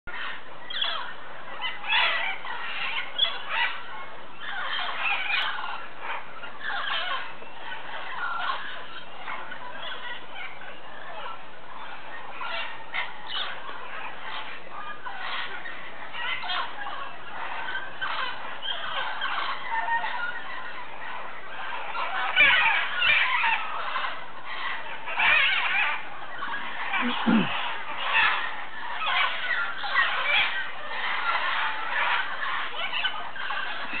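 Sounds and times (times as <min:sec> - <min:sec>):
flock of parrots calling: 0:00.1 - 0:34.0.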